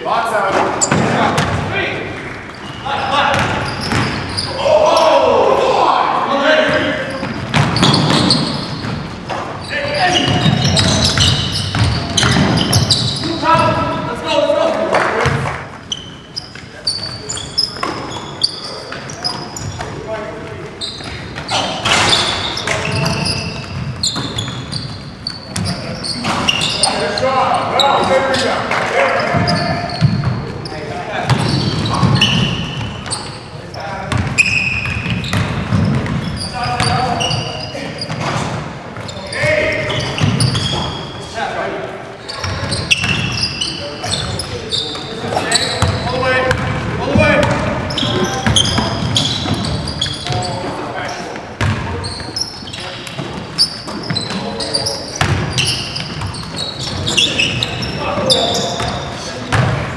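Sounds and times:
sneakers squeaking: 0:00.0 - 0:59.9
players calling out: 0:00.1 - 0:59.9
basketball bouncing on hardwood floor: 0:07.2 - 0:09.0, 0:10.3 - 0:12.9, 0:35.0 - 0:36.2, 0:55.2 - 0:56.3.

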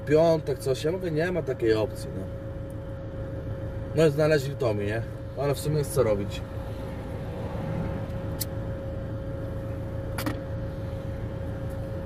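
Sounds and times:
engine hum inside vehicle cab: 0:00.0 - 0:12.0
faint steady whine: 0:00.0 - 0:12.0.

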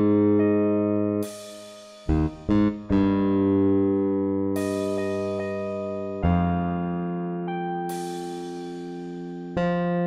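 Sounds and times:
synthesized bass guitar line: 0:00.0 - 0:01.2, 0:02.1 - 0:08.0, 0:09.6 - 0:10.0.

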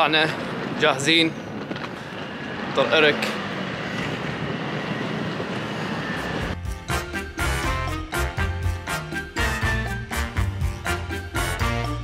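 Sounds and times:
street noise: 0:00.0 - 0:12.0
upbeat swing music: 0:06.6 - 0:12.0.

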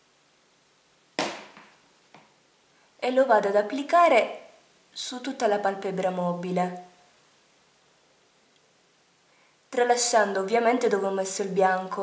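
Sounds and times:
sharp knock: 0:01.2 - 0:01.8.

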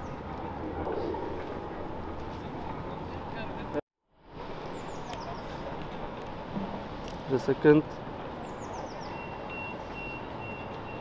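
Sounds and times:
city street noise hum: 0:00.0 - 0:11.0
reversing alarm beeping: 0:09.2 - 0:11.0.

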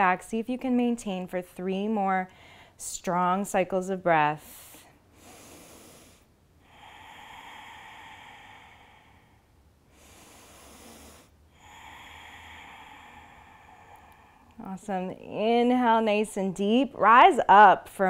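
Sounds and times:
woman breathing deeply: 0:02.3 - 0:02.8, 0:04.5 - 0:15.1.

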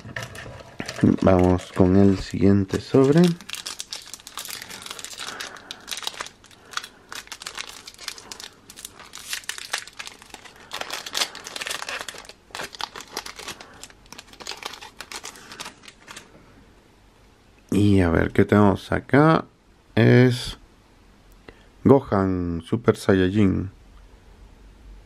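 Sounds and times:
foil pack crinkling and tearing: 0:00.0 - 0:16.3.

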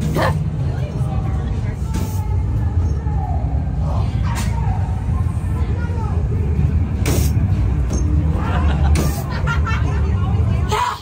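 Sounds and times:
deep steady rumbling ambience: 0:00.0 - 0:11.0.

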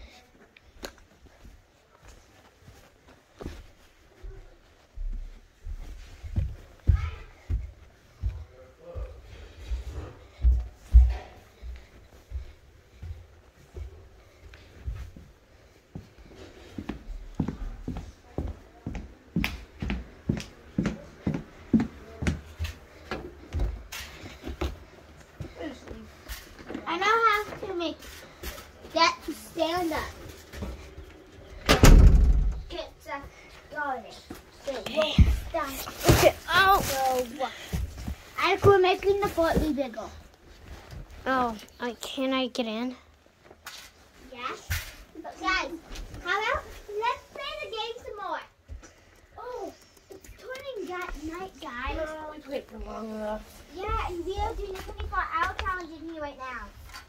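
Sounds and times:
footsteps thudding on floor: 0:10.4 - 0:12.5
loud bump: 0:31.7 - 0:32.7.

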